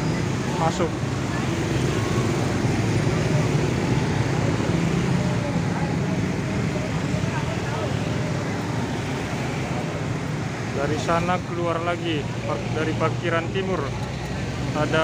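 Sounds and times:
street traffic: 0.0s - 15.0s
voices: 0.0s - 15.0s.

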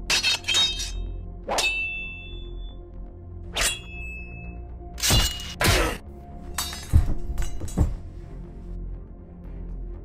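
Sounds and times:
metallic sword clang: 0.0s - 2.7s, 3.6s - 4.4s, 5.0s - 6.0s.

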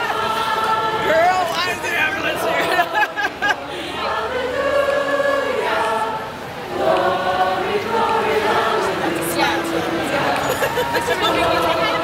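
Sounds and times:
crowd singing in unison: 0.0s - 12.0s.

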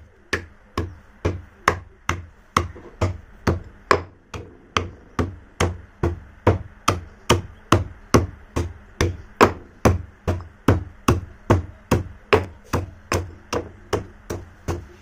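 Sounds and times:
stone pestle pounding in mortar: 0.3s - 15.0s.

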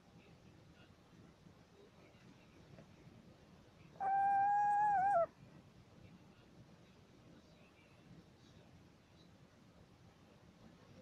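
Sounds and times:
owl whistled call: 4.0s - 5.3s.

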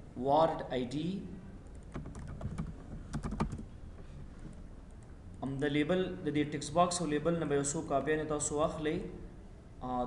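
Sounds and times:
computer keyboard typing: 1.7s - 3.7s.

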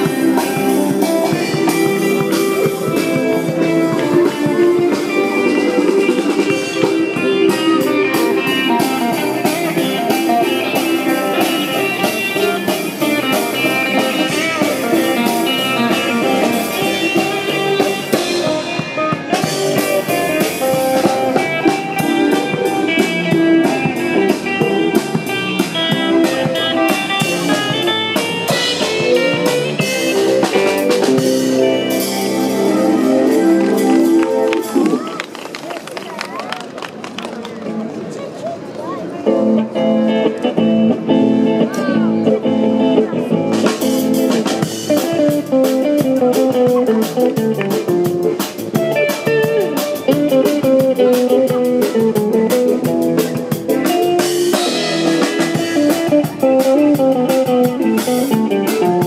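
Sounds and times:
drum kit beat: 0.0s - 35.1s, 43.0s - 59.0s
electric guitar through amplifier: 0.0s - 35.2s, 39.2s - 59.0s.

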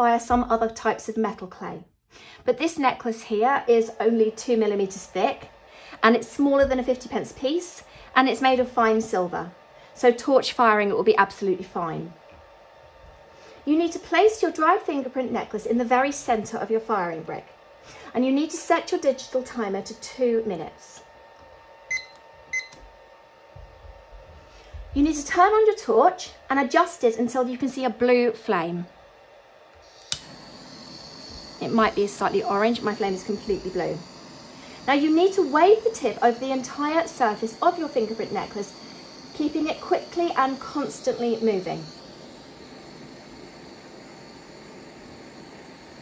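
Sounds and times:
kitchen timer beeping: 21.9s - 22.8s
torch flame hissing: 29.8s - 46.0s.

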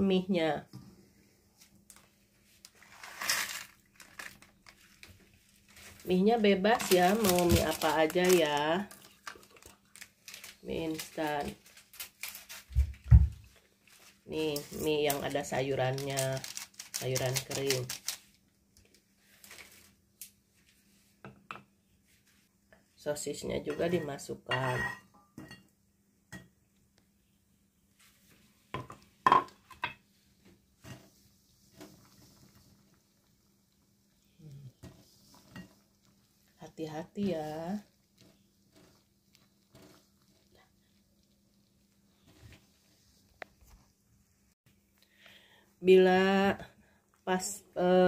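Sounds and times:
faint clicks and rustles: 1.6s - 21.0s, 37.2s - 44.1s.

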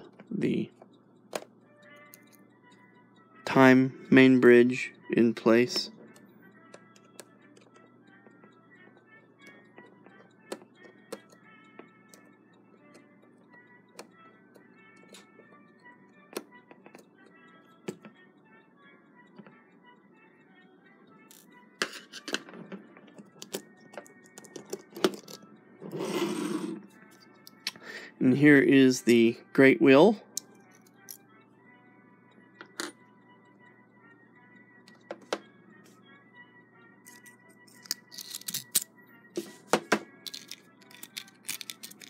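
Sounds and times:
faint background music: 0.0s - 42.0s
screwdriver clicking on metal: 37.1s - 38.9s, 40.3s - 42.0s.

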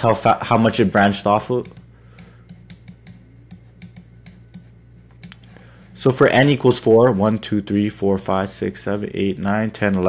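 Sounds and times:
faint low hum: 0.0s - 10.0s
computer mouse clicking: 1.6s - 5.5s.

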